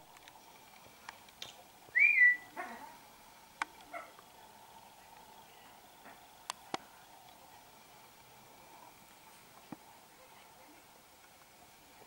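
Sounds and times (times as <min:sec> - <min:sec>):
parrot whistle: 0:01.9 - 0:02.5
faint clicks: 0:03.6 - 0:07.4.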